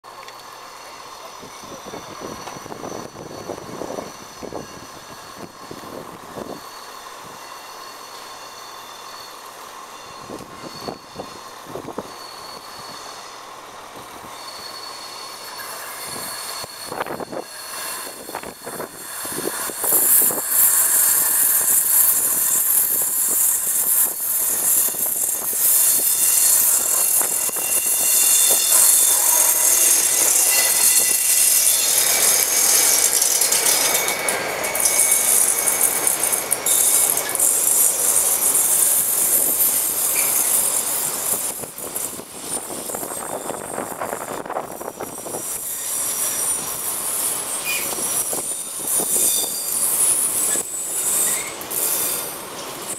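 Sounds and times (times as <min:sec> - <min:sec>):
diesel locomotive engine working: 0:00.0 - 0:52.9
train wagons rolling by: 0:00.0 - 0:52.9
wheels squealing on rails: 0:00.0 - 0:52.9.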